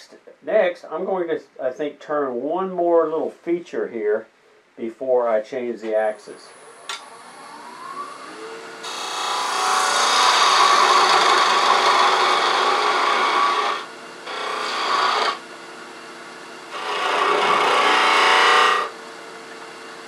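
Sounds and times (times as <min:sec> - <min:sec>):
wood lathe running: 0:08.0 - 0:20.0
turning tool cutting wood: 0:08.8 - 0:20.0.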